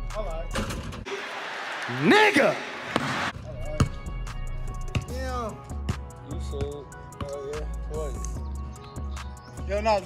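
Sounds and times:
background music: 3.3s - 10.0s.

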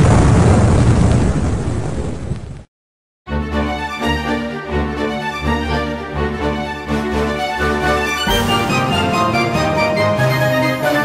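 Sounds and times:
explosion sound effect: 0.0s - 2.6s.

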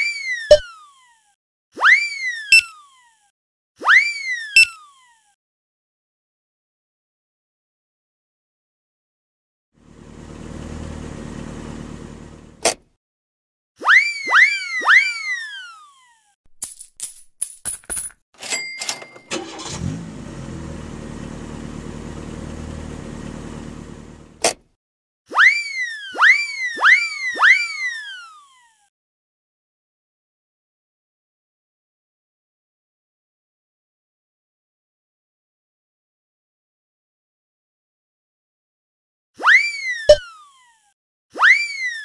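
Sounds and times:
toy car engine hum: 9.8s - 12.6s, 19.1s - 24.4s.

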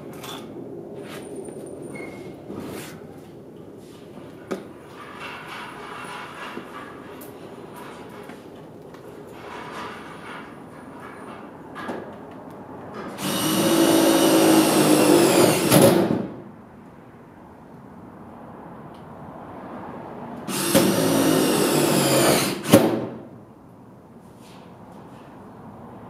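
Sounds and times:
power tool motor whine: 13.2s - 15.7s, 20.5s - 22.8s.

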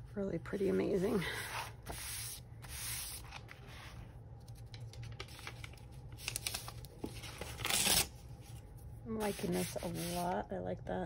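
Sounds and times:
paper rustling and scuffing: 5.2s - 10.4s.

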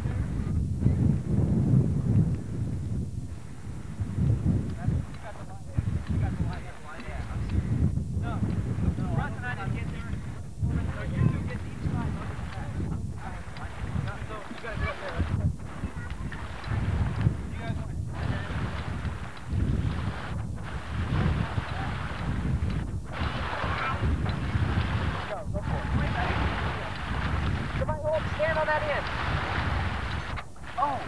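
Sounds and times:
wind buffeting microphone: 0.0s - 31.0s
indistinct voices talking: 4.7s - 31.0s.

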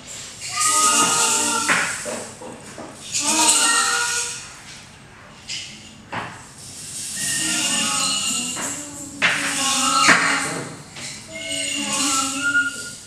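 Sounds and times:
hissing noise: 6.4s - 13.0s.

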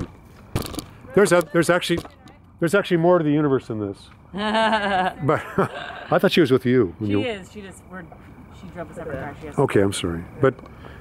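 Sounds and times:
person laughing: 4.3s - 6.3s.

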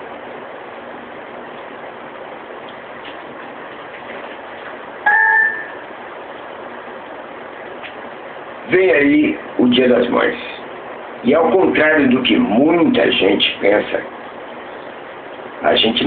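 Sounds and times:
steady background hiss: 0.0s - 16.0s
loud beep: 5.1s - 5.9s.

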